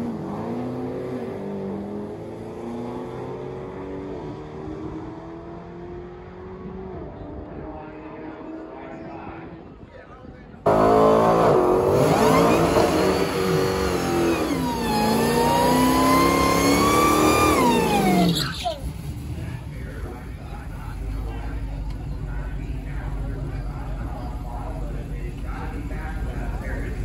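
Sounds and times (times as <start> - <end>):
drag car engine at full throttle: 0.0 - 9.1, 10.7 - 27.0.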